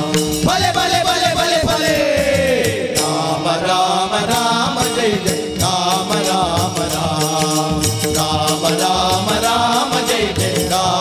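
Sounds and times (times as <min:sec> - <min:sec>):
devotional singing: 0:00.0 - 0:11.0
tabla: 0:00.0 - 0:11.0
small hand cymbals: 0:04.3 - 0:11.0.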